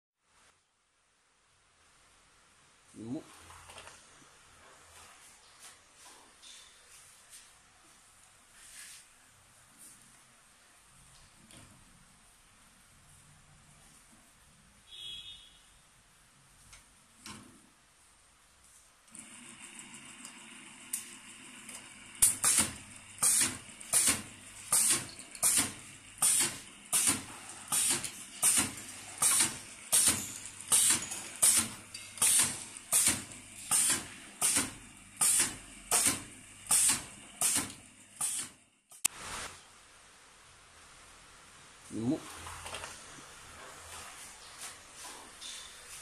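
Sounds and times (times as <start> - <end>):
machine hissing strokes: 21.4 - 39.5.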